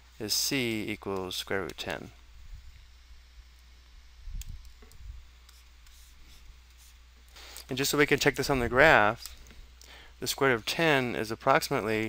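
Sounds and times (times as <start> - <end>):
steady low hum: 0.0 - 12.0
stylus scratching on tablet: 5.5 - 7.0.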